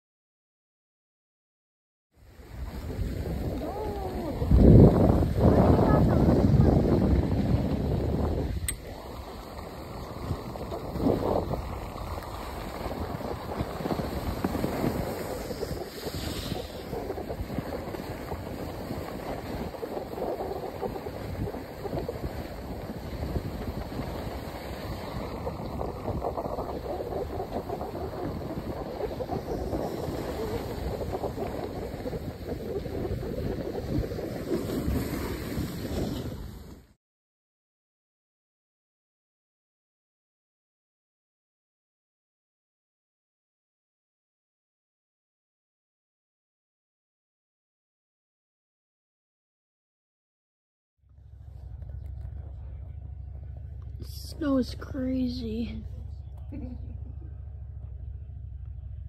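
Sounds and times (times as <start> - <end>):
skis sliding over snow: 2.3 - 37.0
wind on microphone: 2.3 - 37.0.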